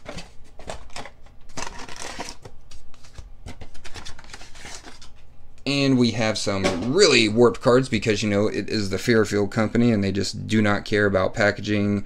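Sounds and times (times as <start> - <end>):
paper and card rustling: 0.0 - 5.3.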